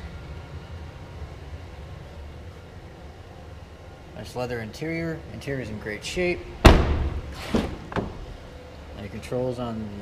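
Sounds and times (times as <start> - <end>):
car door knock: 6.6 - 7.2.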